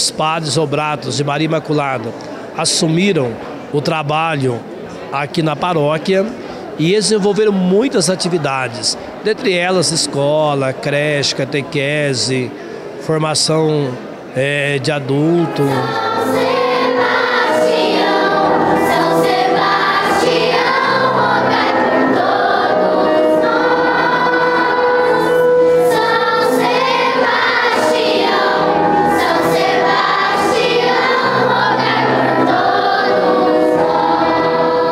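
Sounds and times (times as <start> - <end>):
children's choir singing: 15.1 - 34.9.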